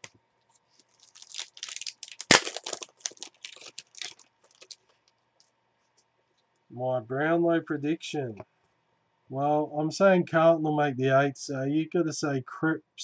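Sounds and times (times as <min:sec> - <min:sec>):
foil wrapper crinkling: 0:00.0 - 0:05.2
loud foil rip: 0:01.0 - 0:04.8.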